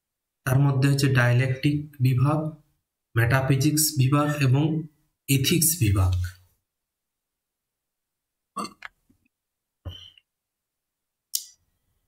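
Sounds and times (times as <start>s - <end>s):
man's throat noises: 8.5s - 9.0s.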